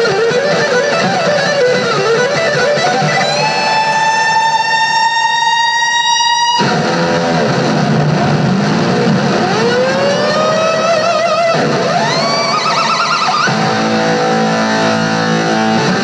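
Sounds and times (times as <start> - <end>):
electric guitar solo: 0.0 - 16.0.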